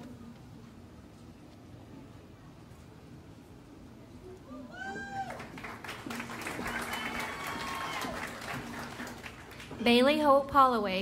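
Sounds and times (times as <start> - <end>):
low room murmur: 0.0 - 11.0
high-pitched whooping cheer: 4.5 - 5.6, 6.6 - 8.5.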